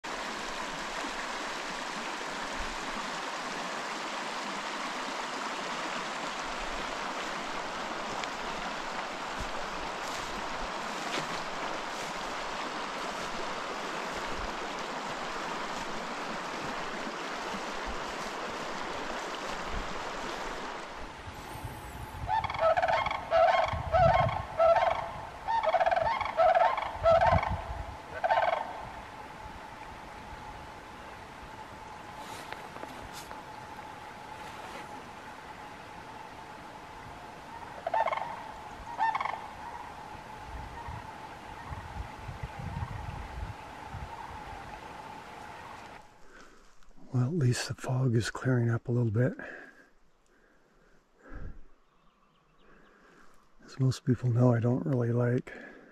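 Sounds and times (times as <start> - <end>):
creek running over stones: 0.0 - 51.0
cranes calling: 21.5 - 36.6, 37.4 - 46.4.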